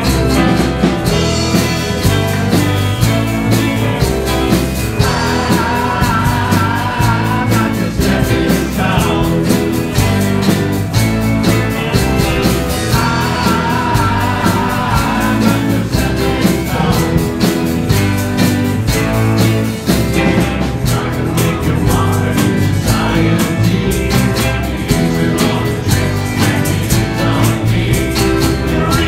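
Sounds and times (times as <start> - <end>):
live rock band playing: 0.0 - 29.0
voices singing: 0.0 - 29.0.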